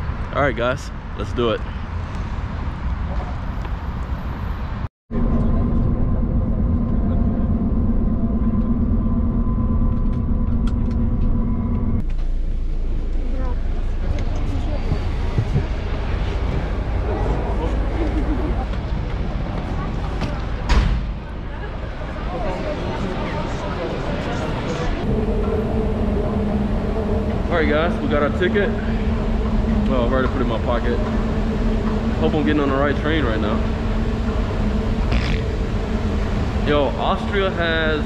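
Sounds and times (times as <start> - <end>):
bus engine drone: 0.0 - 38.0.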